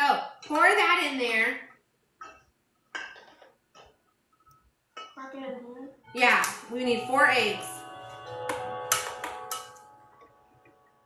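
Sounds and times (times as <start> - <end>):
background music: 5.8 - 11.0.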